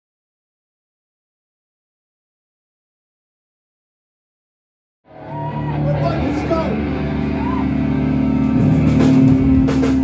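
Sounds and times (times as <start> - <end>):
electric guitar chord ringing: 5.6 - 10.0.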